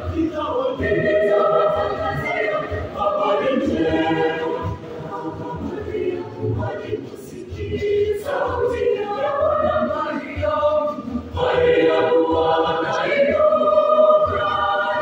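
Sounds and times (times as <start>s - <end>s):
youth choir singing in harmony: 0.0s - 15.0s.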